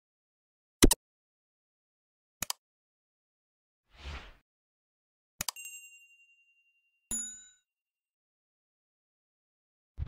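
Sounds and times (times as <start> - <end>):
ringing ding: 5.6 - 7.6.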